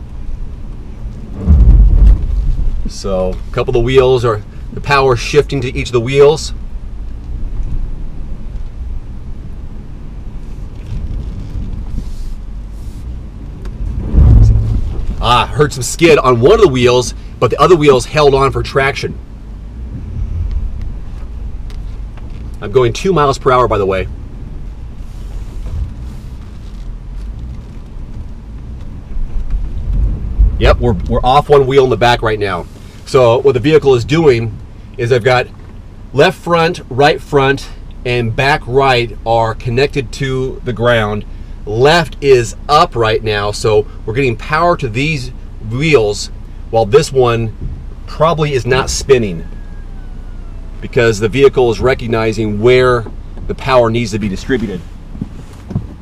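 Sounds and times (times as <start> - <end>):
vehicle rumbling on rocky trail: 0.0 - 56.0.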